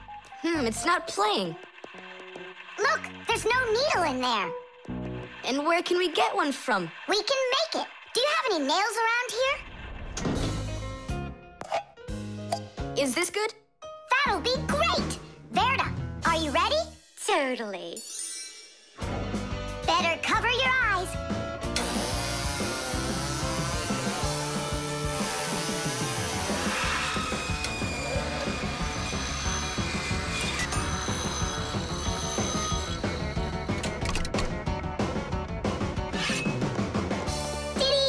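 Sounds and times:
cartoon background music: 0:00.0 - 0:09.6, 0:10.2 - 0:38.0
circular saw grinding metal: 0:00.6 - 0:04.6, 0:21.8 - 0:34.0.

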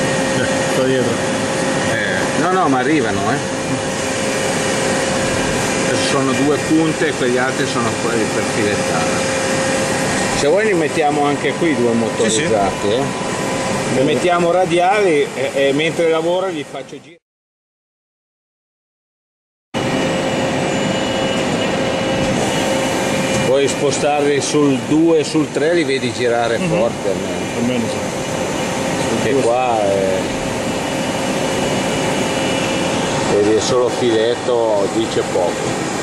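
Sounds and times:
lathe machine running: 0:00.0 - 0:16.6, 0:19.8 - 0:36.0
constant machine whine: 0:00.0 - 0:17.2, 0:19.8 - 0:36.0.

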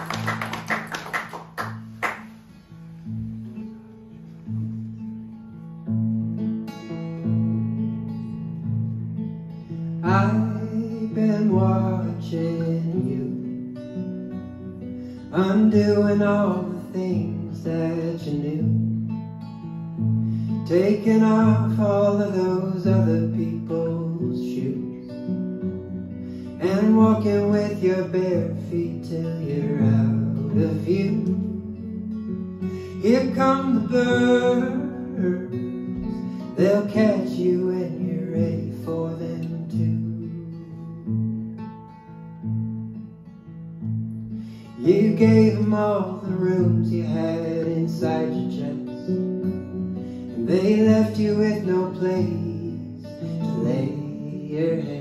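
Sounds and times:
acoustic guitar: 0:00.0 - 0:55.0
man singing: 0:10.0 - 0:13.6, 0:15.3 - 0:19.1, 0:20.5 - 0:25.2, 0:26.5 - 0:41.1, 0:44.6 - 0:55.0.

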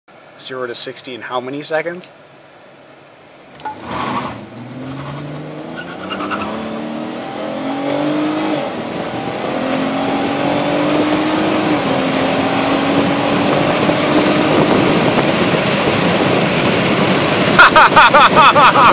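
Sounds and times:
road and wind noise: 0:00.1 - 0:18.9
car engine accelerating: 0:03.6 - 0:17.6.

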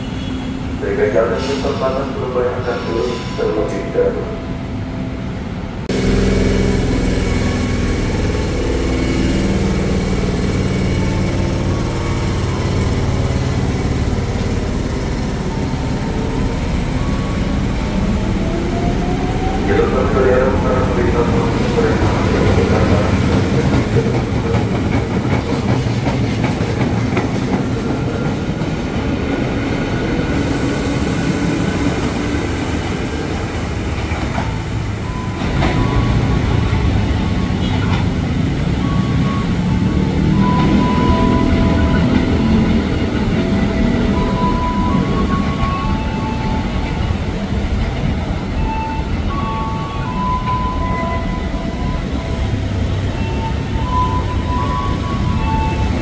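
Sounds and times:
train wheels rumbling on rail: 0:04.7 - 0:56.0.

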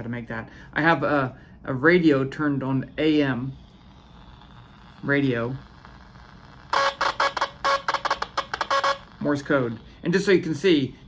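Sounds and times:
radio interference buzz bursts: 0:01.8 - 0:11.0.

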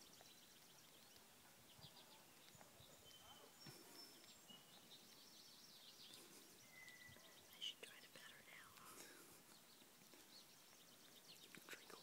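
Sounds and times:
faint birdsong chirps: 0:00.0 - 0:12.0.

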